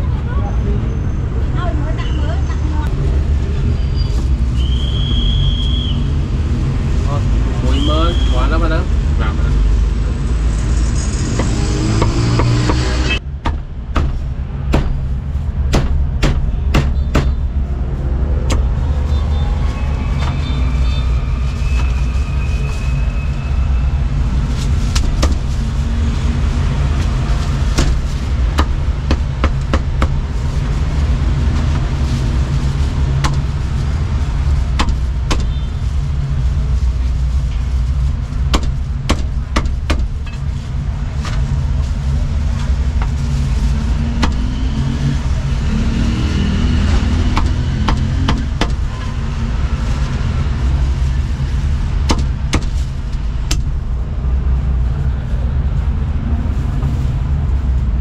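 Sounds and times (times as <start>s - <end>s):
low rumble: 8.9s - 58.0s
cleaver chopping meat on wood: 11.4s - 15.1s, 15.7s - 17.4s, 34.8s - 35.6s, 38.5s - 40.1s, 44.2s - 44.5s, 47.0s - 48.8s, 52.1s - 52.7s.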